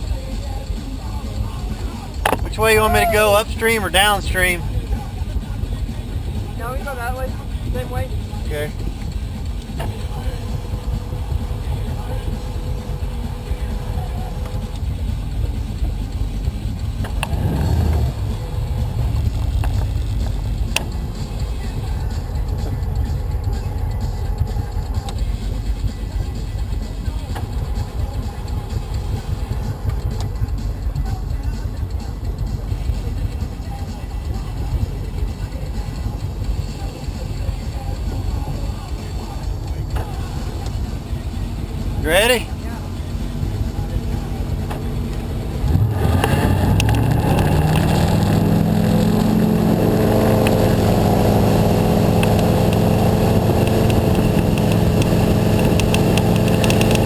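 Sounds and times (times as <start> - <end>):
boat engine rumbling: 0.0 - 57.0.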